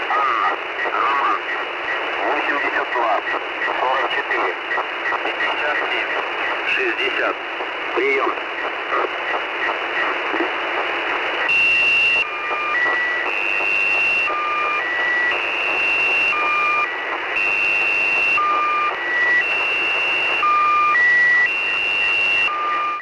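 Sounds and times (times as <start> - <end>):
radio receiver hiss: 0.0 - 20.6.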